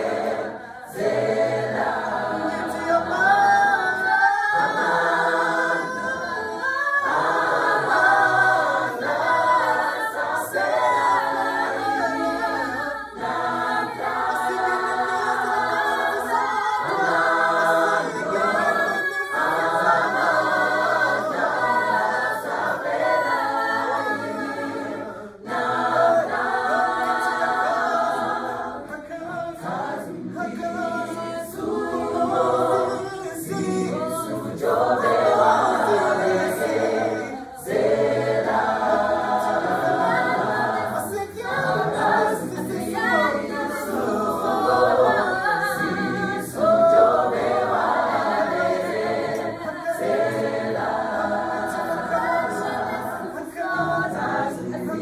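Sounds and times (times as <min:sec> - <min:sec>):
gospel choir singing a cappella: 0:00.0 - 0:55.0.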